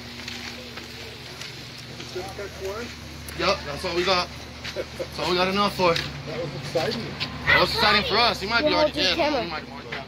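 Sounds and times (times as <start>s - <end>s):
footsteps on dirt: 0.0s - 8.1s.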